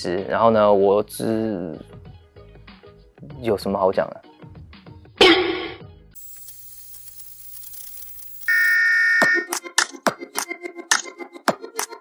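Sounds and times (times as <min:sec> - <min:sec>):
loud electronic beep tone: 0:06.2 - 0:09.5.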